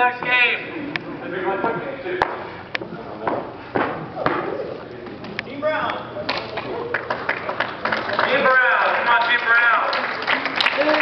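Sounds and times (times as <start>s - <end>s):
murmur of crowd voices: 0.0s - 11.0s
sharp handclaps: 6.3s - 11.0s.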